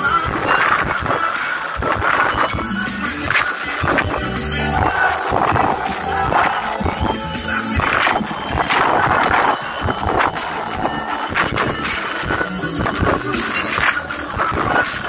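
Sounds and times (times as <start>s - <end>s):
drums: 0.0s - 15.0s
electric bass: 1.8s - 15.0s.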